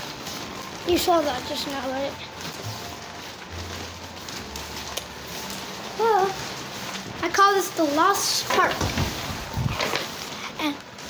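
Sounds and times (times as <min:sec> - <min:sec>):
tablet handling rustle: 0:00.0 - 0:10.5.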